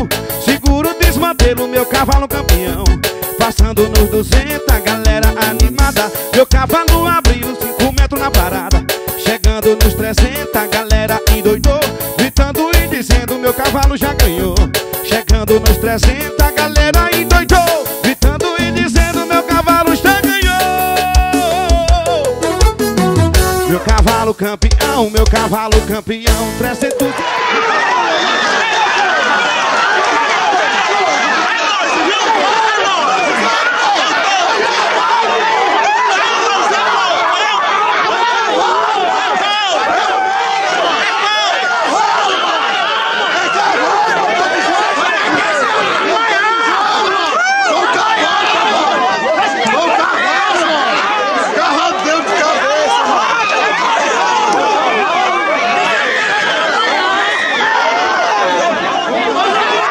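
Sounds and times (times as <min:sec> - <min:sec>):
crowd of men shouting and talking: 0:00.0 - 0:59.9.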